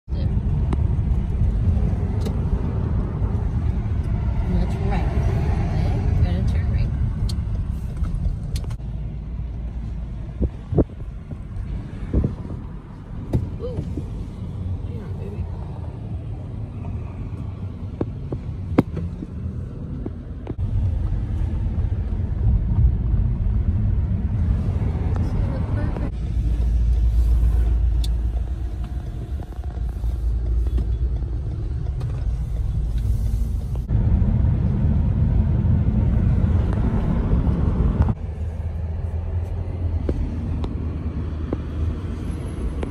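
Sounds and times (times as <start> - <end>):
vehicle road rumble from inside: 0.0 - 42.9.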